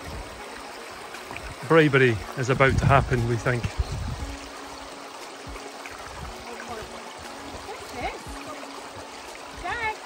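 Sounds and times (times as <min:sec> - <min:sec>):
stream running over stones: 0:00.0 - 0:10.0.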